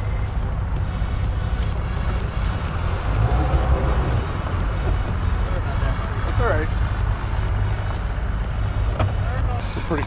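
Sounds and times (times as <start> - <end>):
outboard boat motors idling: 0.0 - 10.0.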